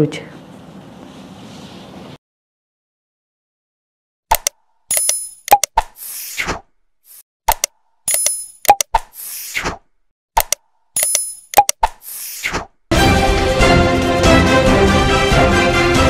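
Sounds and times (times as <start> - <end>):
sharp clicks: 4.3 - 6.0, 7.5 - 9.2, 10.4 - 12.0.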